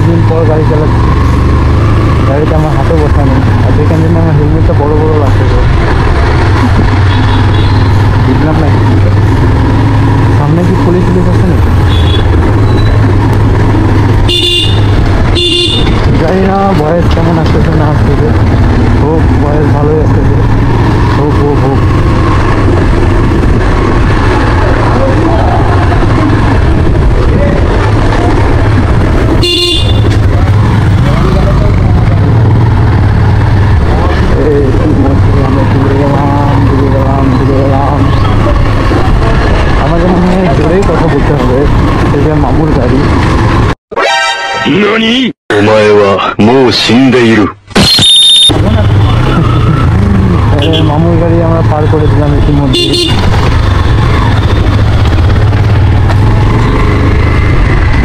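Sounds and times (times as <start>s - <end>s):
motorcycle engine rumble: 0.0s - 43.8s, 47.8s - 58.0s
vehicle horn toots: 7.0s - 8.1s, 11.8s - 13.0s, 14.2s - 16.1s, 29.4s - 30.2s, 44.0s - 45.0s, 47.8s - 49.8s, 50.6s - 51.0s, 52.7s - 54.6s.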